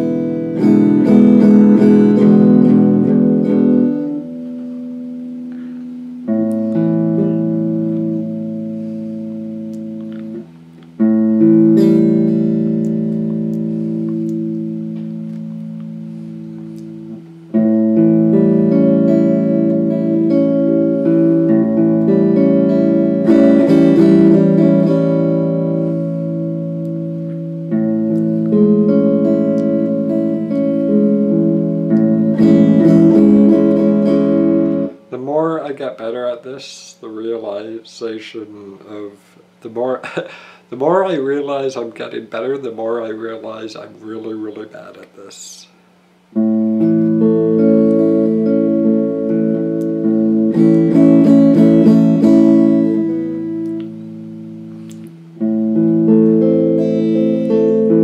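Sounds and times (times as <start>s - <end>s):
electric guitar chords ringing: 0.0s - 37.6s, 45.8s - 58.0s
picked guitar notes: 0.0s - 58.0s.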